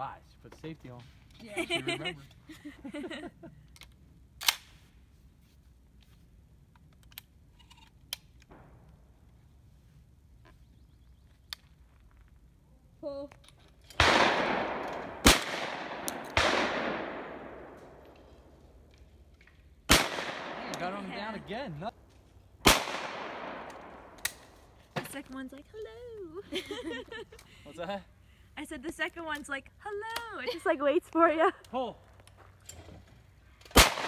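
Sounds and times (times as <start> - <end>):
shotgun shot echoing: 14.0 - 18.0, 19.9 - 21.4, 22.6 - 24.4, 33.7 - 34.0.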